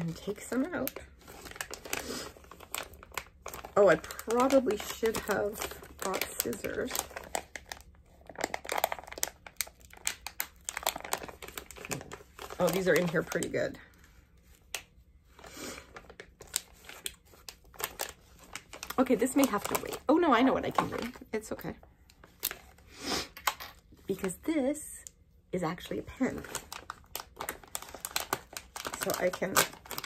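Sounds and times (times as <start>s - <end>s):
plastic packaging crackling: 0.0s - 13.8s, 15.4s - 21.2s, 26.1s - 30.0s.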